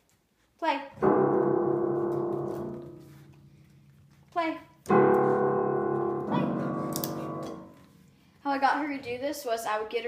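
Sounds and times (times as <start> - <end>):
dissonant piano clusters: 1.0 - 3.9, 4.9 - 8.0.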